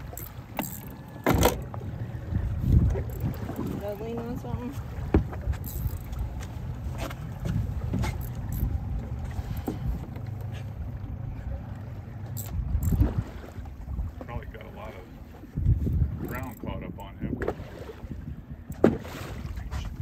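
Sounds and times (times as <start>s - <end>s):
sharp knocks from boat: 0.0s - 2.0s, 5.0s - 11.1s, 12.3s - 14.4s, 17.3s - 17.9s, 18.7s - 20.0s
low rumble of wind and water: 0.0s - 20.0s.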